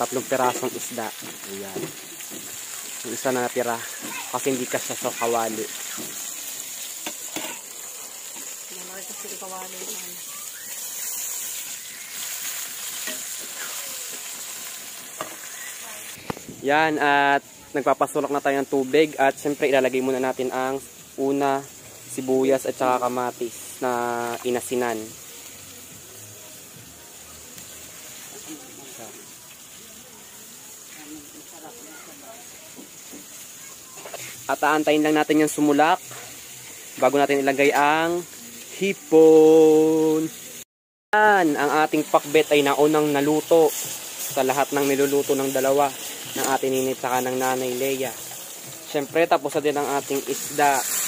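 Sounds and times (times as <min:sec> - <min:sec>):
gas stove burner hissing: 0:00.0 - 0:25.8, 0:41.4 - 0:51.0
fish sizzling in oil: 0:00.0 - 0:51.0.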